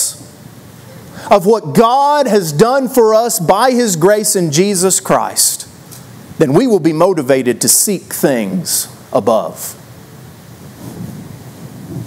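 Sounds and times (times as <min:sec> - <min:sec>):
low rustling on lapel microphone: 0:10.5 - 0:12.0.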